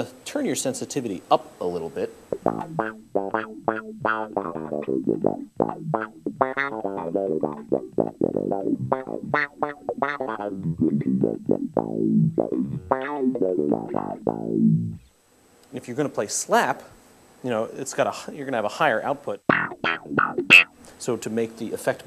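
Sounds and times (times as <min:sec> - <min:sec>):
funk bass riff with envelope filter: 0:02.3 - 0:15.1, 0:19.5 - 0:20.8.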